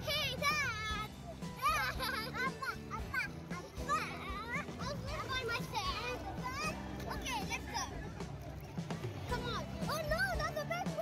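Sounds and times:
music playing: 0.0 - 11.0
children shrieking in play: 0.3 - 8.2.

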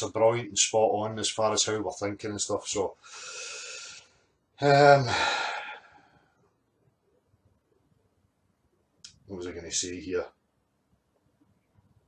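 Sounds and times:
man saying um: 4.6 - 5.3
man sighing: 4.6 - 6.1.

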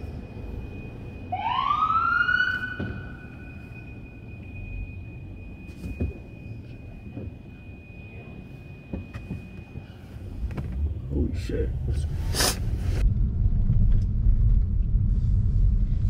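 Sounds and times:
police siren wail: 0.0 - 10.2
low background rumble: 6.3 - 16.0.

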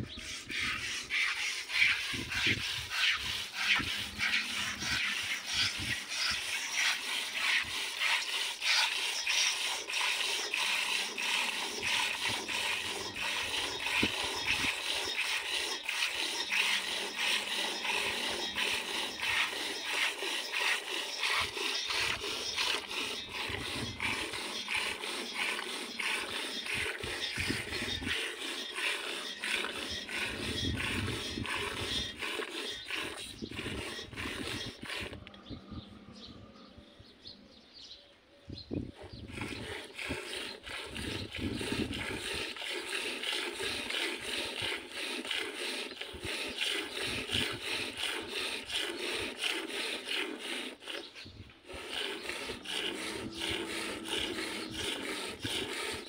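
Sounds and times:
milk squirting into steel bowl: 3.6 - 35.2.

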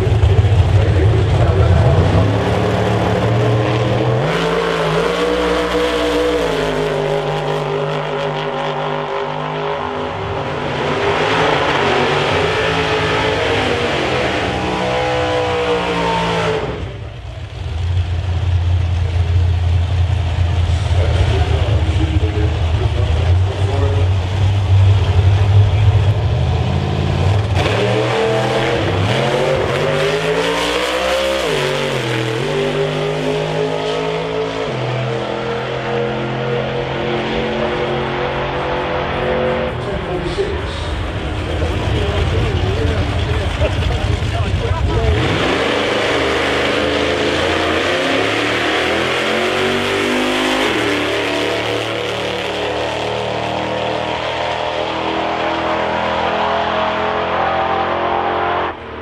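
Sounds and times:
drag car engine at full throttle: 0.0 - 59.0
drag car engine rumbling and revving: 0.0 - 59.0.

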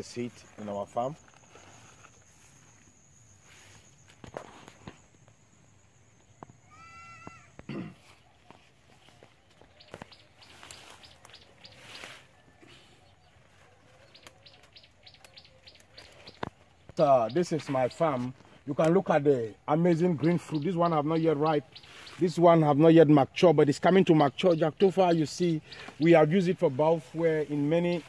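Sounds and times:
rustling leafy plants: 0.0 - 5.1, 6.7 - 28.0
high insect drone: 0.0 - 8.1.

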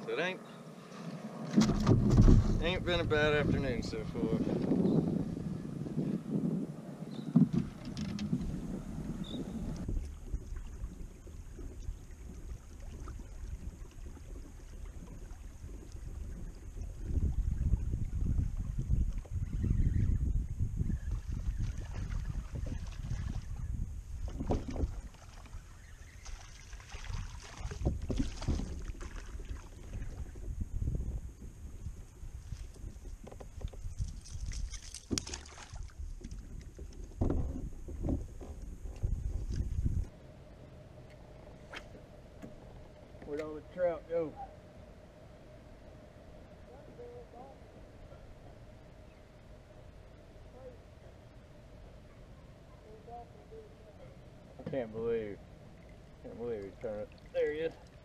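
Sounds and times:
wind buffeting microphone: 1.2 - 40.2
fishing gear knocking and rattling: 7.4 - 8.5.

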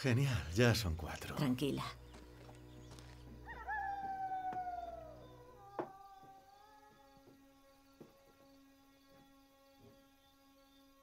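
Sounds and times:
wild canid howling: 3.4 - 7.4.

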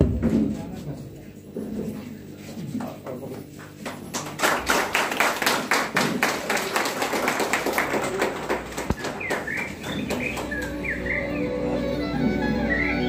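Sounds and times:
audience clapping: 3.6 - 11.4
bird chirps: 9.0 - 11.6.

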